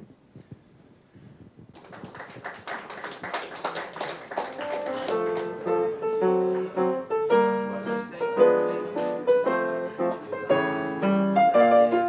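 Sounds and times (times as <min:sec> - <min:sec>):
audience applauding: 0:01.7 - 0:06.0
piano notes: 0:04.5 - 0:12.0.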